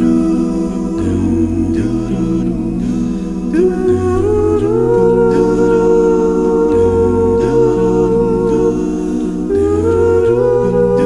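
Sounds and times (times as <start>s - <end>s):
man singing a cappella harmony: 0.0s - 11.0s.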